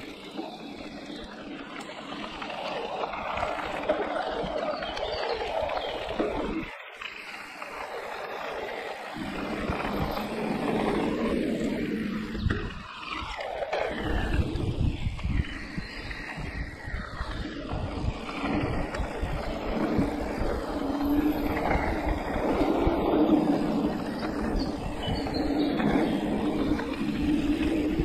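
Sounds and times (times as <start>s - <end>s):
bike rattling over bumps: 0.0s - 28.0s
wind on microphone: 9.0s - 28.0s.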